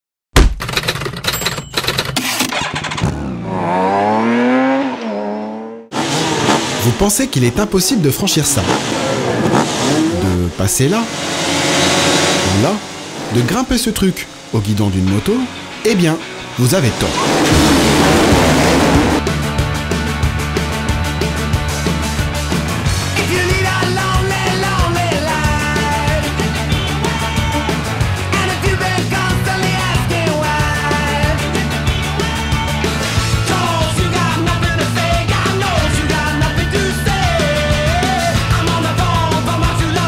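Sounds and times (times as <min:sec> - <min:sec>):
motorcycle engine popping and revving: 0:00.4 - 0:07.0, 0:08.5 - 0:10.6
motorcycle engines revving: 0:02.5 - 0:14.5, 0:15.6 - 0:19.3
loud hit: 0:11.1 - 0:19.3
rock music with steady beat: 0:12.4 - 0:40.0.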